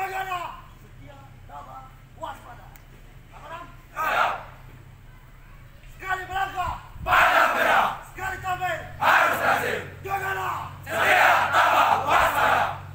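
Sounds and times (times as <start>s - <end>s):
group shouting: 3.9s - 4.6s, 7.0s - 12.9s.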